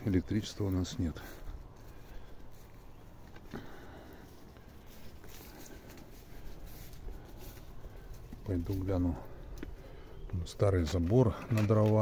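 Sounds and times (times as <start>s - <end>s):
footsteps on grass: 0.0s - 11.3s
outdoor background noise: 0.0s - 12.0s.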